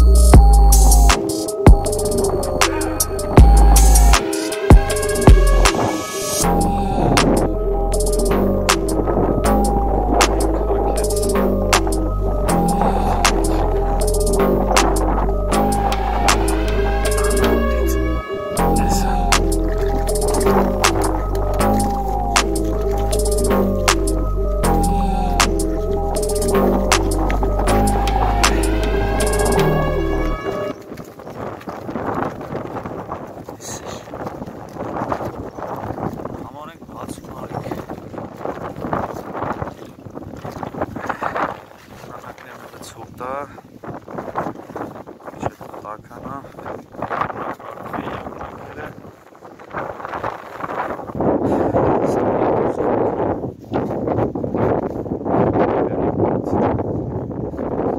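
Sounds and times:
background music: 0.0 - 30.9
wind buffeting microphone: 0.0 - 57.9
dry reeds and grass rustling: 9.0 - 51.4, 52.5 - 55.6.

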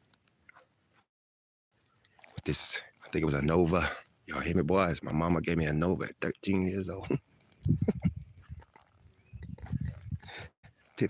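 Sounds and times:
man laughing in short bursts: 7.8 - 8.2.

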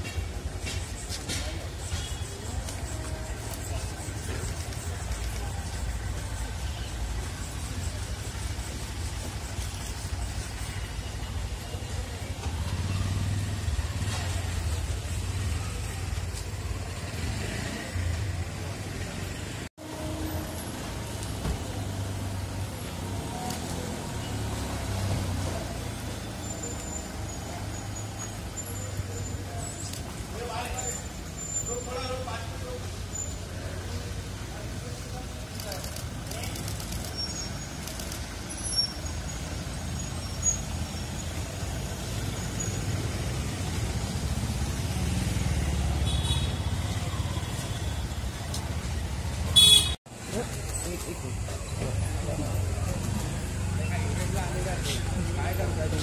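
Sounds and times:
people talking: 0.0 - 19.7, 20.4 - 38.6, 50.2 - 56.0.

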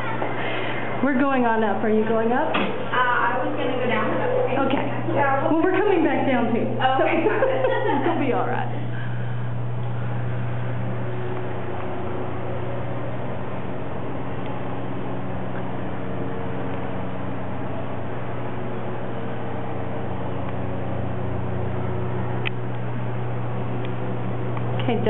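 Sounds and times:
elevator hum with hiss: 0.0 - 25.0.

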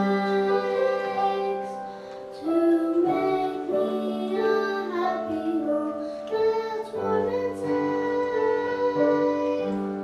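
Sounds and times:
girls singing into a microphone: 0.0 - 10.0
instrumental accompaniment: 0.0 - 10.0.

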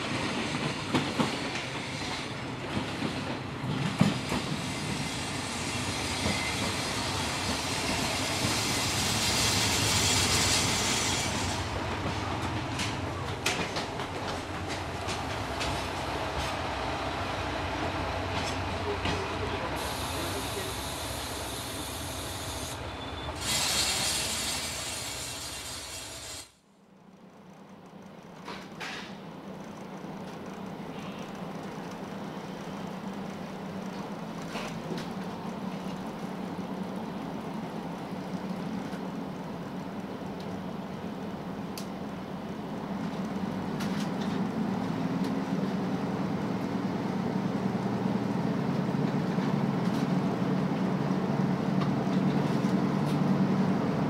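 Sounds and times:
train cabin running noise: 0.0 - 26.3, 26.9 - 54.0
hissing outdoor station noise: 0.0 - 54.0.

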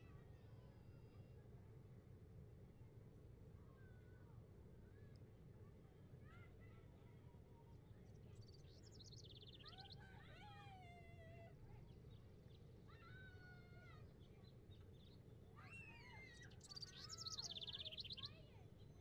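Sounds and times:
low steady background hum: 0.0 - 19.0
small birds chirping: 16.4 - 18.4.

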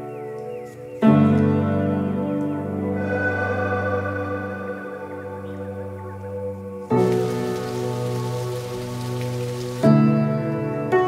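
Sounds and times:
background music: 0.0 - 11.0
stream rushing over boulders: 7.0 - 9.9.

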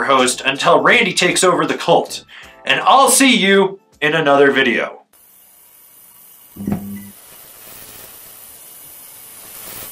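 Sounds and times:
steady hissing: 5.1 - 9.9.

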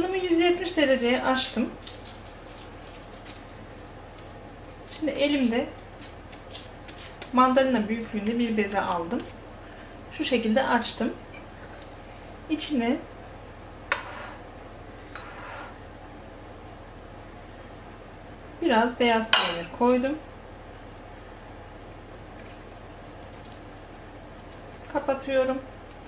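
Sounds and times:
low steady hum: 0.0 - 26.0
gloved hands rustling: 5.8 - 7.6.

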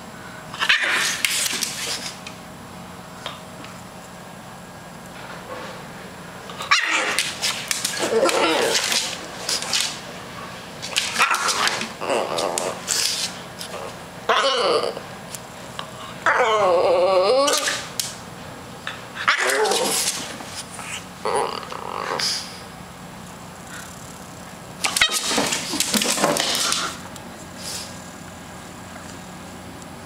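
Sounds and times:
dog groaning: 7.9 - 9.2, 11.0 - 15.1, 16.2 - 17.9, 20.8 - 22.6.

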